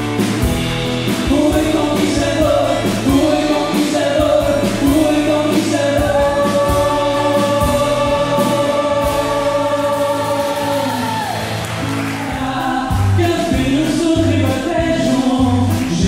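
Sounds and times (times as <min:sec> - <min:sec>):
acoustic guitar: 0:00.0 - 0:16.0
drums: 0:00.0 - 0:16.0
man and woman singing together: 0:01.2 - 0:11.6, 0:12.2 - 0:16.0.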